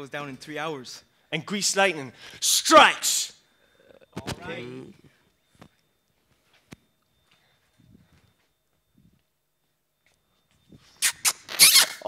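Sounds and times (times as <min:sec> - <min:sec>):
man saying a word: 0:04.2 - 0:05.0.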